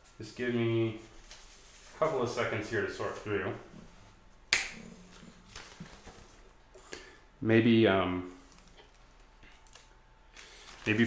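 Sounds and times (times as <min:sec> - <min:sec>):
paper snap: 0:04.5 - 0:05.8.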